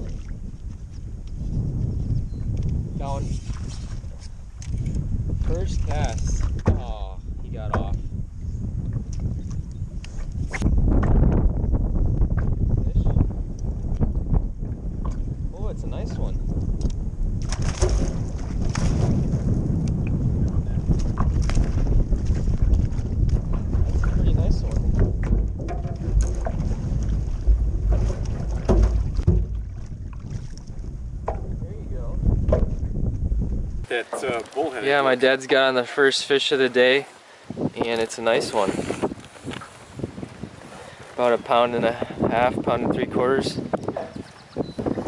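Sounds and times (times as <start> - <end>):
wind on microphone: 0.0 - 36.0, 36.9 - 45.0
waves splashing against boat hull: 5.3 - 8.1, 17.4 - 45.0
knocks: 24.9 - 26.7, 27.5 - 29.7, 31.2 - 31.6.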